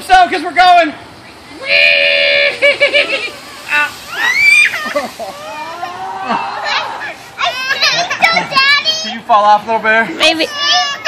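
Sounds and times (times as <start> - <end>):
excited voices: 1.4 - 9.4, 10.0 - 11.0
children shrieking and squealing: 1.5 - 9.2, 10.2 - 11.0.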